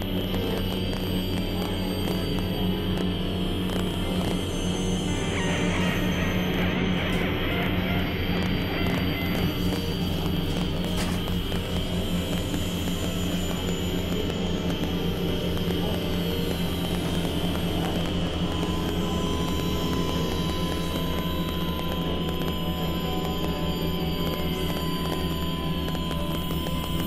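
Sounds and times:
synthesizer drone music: 0.0 - 27.0.

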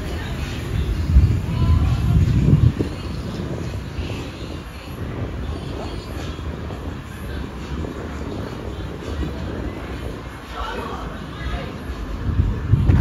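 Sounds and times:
distant voices: 0.0 - 13.0
traffic rumble: 0.0 - 13.0.

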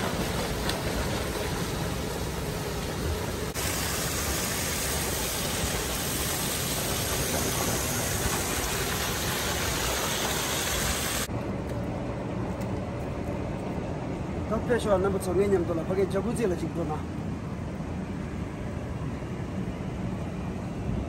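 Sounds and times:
water jets splashing into pool: 0.0 - 11.3.

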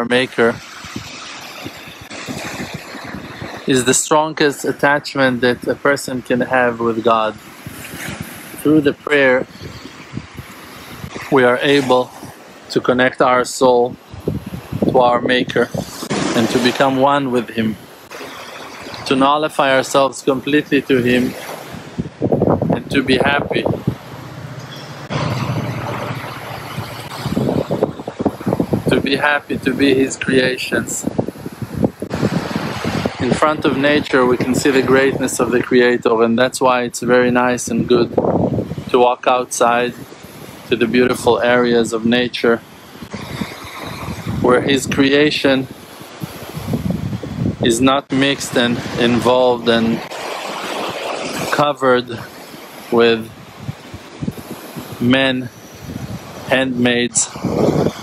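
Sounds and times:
wind buffeting microphone: 0.0 - 39.0, 39.7 - 58.0
small waves breaking on sand: 0.3 - 12.8, 15.5 - 22.8, 23.6 - 36.0, 39.6 - 41.7, 42.6 - 44.5, 45.6 - 58.0.

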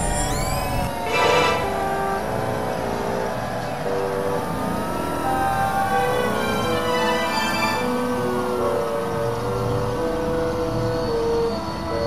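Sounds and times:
held electronic notes: 0.0 - 12.0.

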